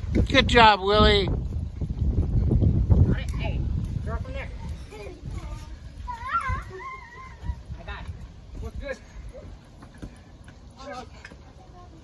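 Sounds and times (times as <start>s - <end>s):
child squealing: 6.1s - 7.8s.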